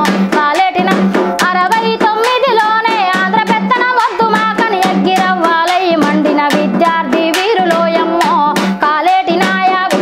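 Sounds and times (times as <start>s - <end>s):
drum strokes: 0.0s - 10.0s
woman singing folk song: 0.0s - 10.0s.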